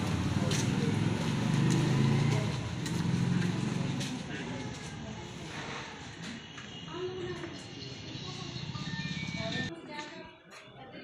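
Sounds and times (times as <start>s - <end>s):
people talking: 0.0s - 1.2s, 3.9s - 11.0s
motorcycle engine running: 0.0s - 4.3s.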